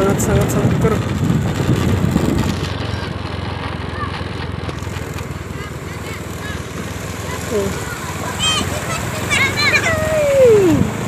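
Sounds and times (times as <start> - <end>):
scooter engine running: 0.0 - 11.0.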